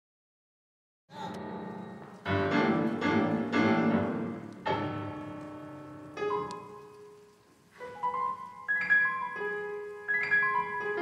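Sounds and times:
piano playing loud chords: 1.1 - 11.0.

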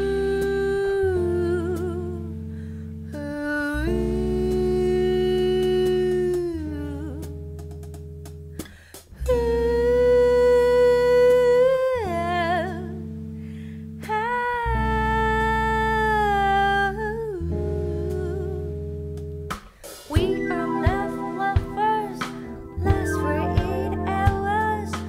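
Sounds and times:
steady bass: 0.0 - 25.0
woman singing with vibrato: 3.2 - 7.3, 9.2 - 13.0, 14.1 - 18.7, 20.1 - 25.0
keyboard chords: 20.2 - 25.0.

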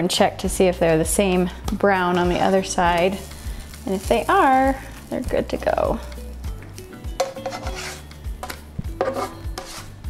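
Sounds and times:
background music with bass beat: 0.6 - 10.0
spatula scraping skillet: 1.9 - 4.4, 7.2 - 10.0.

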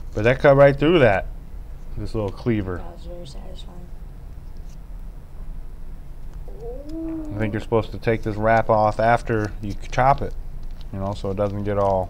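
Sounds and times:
steady low hum: 0.0 - 12.0
cat meowing: 6.5 - 7.8.

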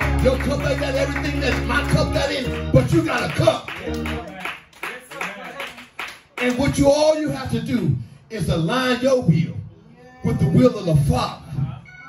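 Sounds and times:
rhythmic hand clapping: 0.0 - 6.9.

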